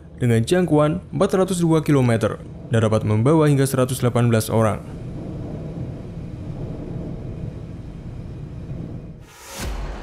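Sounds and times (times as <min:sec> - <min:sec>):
distant boat engine rumble: 0:00.0 - 0:09.2
sea noise: 0:00.0 - 0:10.0.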